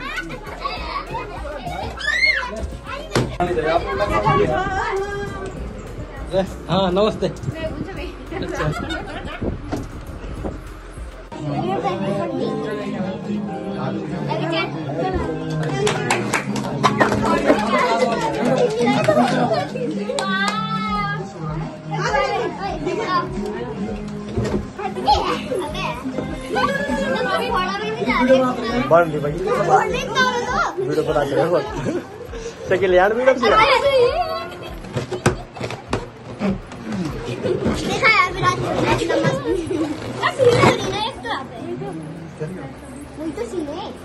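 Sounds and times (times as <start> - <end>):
background music: 0.0 - 39.6
adults and children talking: 0.0 - 44.0
people chattering: 0.0 - 44.0
music with low bass line: 2.6 - 11.4.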